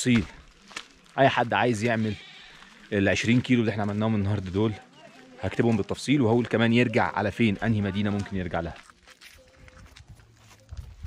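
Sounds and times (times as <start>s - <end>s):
footsteps on dirt path: 0.0s - 11.0s.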